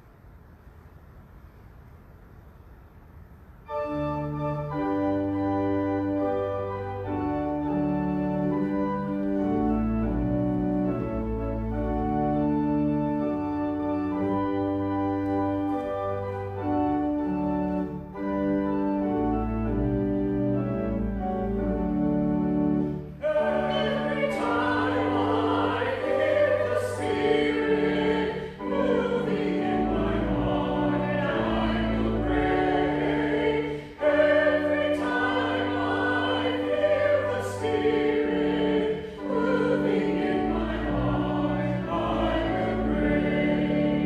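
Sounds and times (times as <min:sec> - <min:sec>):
church organ: 0:03.6 - 0:44.0
voices singing a hymn: 0:22.9 - 0:44.0.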